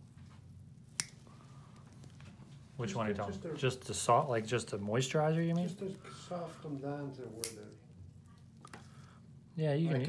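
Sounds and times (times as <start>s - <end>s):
nail clippers snipping toenail: 7.4s - 7.8s.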